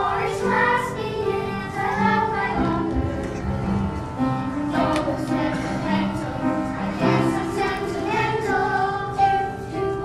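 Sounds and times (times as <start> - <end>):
girls choir singing: 0.0 - 10.0.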